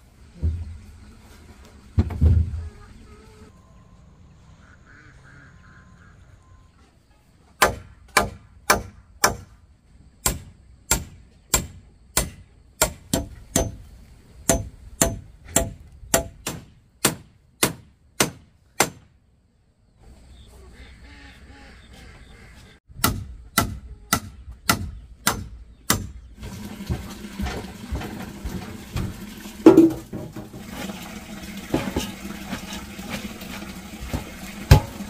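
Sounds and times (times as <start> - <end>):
dull thump: 2.0 - 2.6, 29.0 - 30.7.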